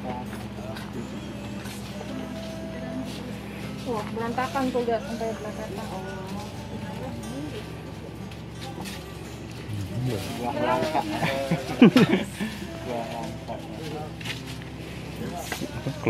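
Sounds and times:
background music: 0.0 - 16.0
people talking nearby: 0.0 - 16.0.

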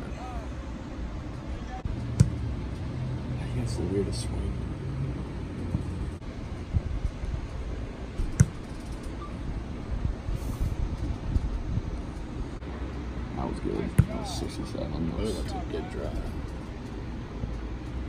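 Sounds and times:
football kick thud: 2.2 - 2.4, 8.2 - 8.6.

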